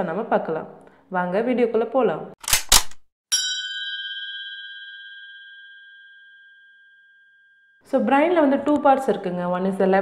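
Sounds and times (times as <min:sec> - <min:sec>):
bell-like chime: 0:03.3 - 0:07.8.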